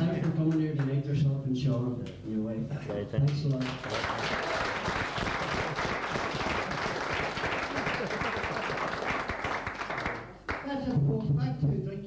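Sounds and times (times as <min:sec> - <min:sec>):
audience applauding: 0:03.5 - 0:10.7.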